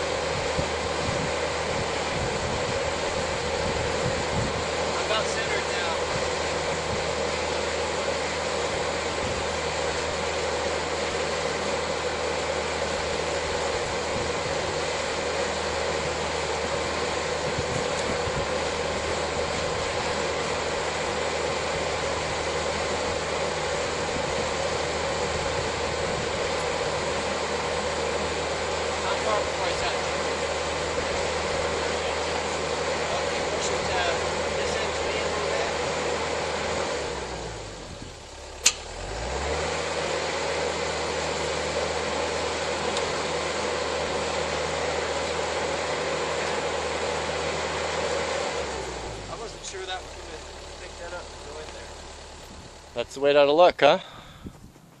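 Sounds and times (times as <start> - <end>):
excavator diesel engine running: 0.0 - 55.0
sharp click: 38.6 - 38.9.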